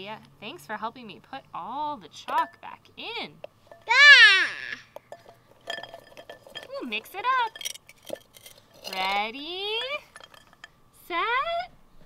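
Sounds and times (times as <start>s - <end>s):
toddler squealing: 3.9s - 4.8s
chalk sticks clinking in ceramic pot: 5.0s - 10.8s.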